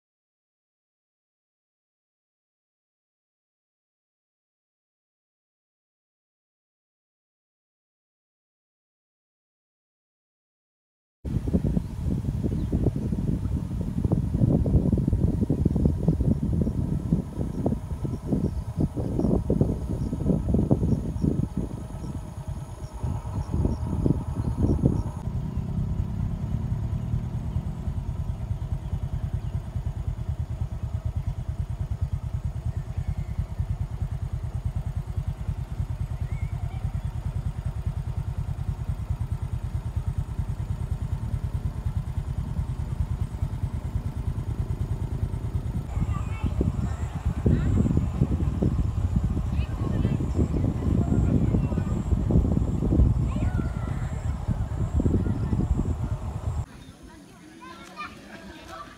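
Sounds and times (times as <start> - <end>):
wind buffeting microphone: 11.3 - 56.8
steady low rumble: 11.3 - 58.9.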